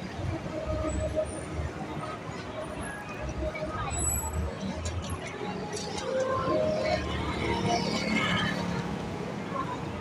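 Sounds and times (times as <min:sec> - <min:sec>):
people talking: 0:00.0 - 0:10.0
traffic rumble: 0:00.0 - 0:10.0.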